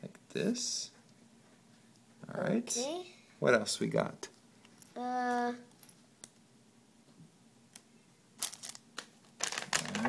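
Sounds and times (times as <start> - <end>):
plastic packaging rustling: 8.4 - 10.0
plastic pieces clicking: 8.4 - 10.0.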